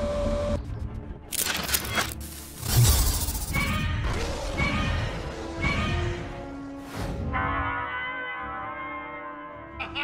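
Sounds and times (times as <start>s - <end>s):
cartoon soundtrack music: 2.7s - 10.0s.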